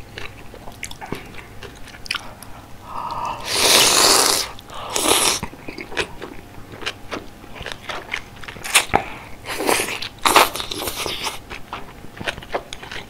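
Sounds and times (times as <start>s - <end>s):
wet chewing with clicks: 0.1s - 2.6s, 5.4s - 13.0s
slurping noodles: 3.3s - 5.4s.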